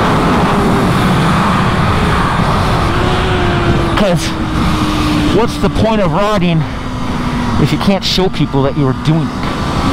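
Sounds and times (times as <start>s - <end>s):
motorcycle engine at speed: 0.0s - 9.9s
wind rush on microphone: 0.0s - 9.9s.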